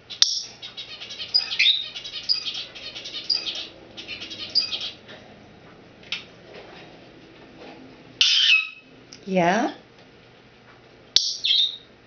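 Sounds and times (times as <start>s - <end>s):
parrot chirping and whistling: 0.1s - 5.0s, 8.2s - 8.9s, 11.2s - 11.9s.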